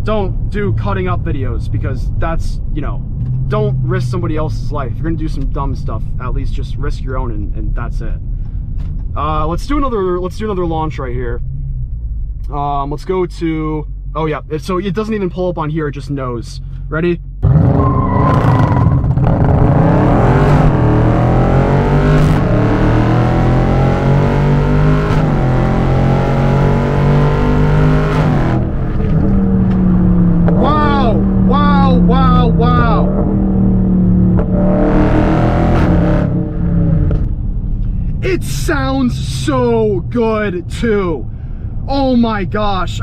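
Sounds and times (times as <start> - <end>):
car engine at full throttle: 0.0 - 15.4, 16.6 - 43.0.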